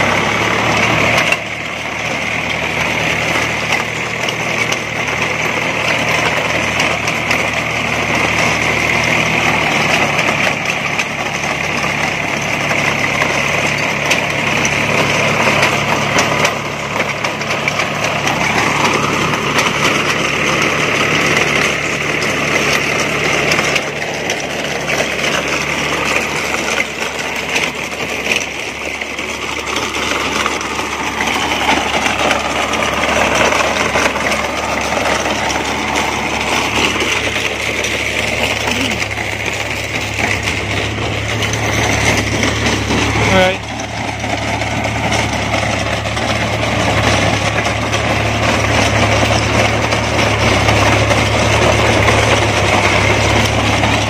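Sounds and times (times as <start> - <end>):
tractor diesel engine under load: 0.0 - 54.0
trencher chain churning soil: 0.0 - 54.0.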